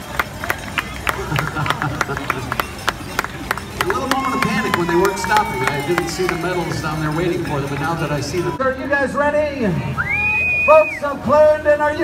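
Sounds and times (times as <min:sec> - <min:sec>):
crowd clapping: 0:00.0 - 0:08.6
crowd chatter: 0:00.0 - 0:12.0.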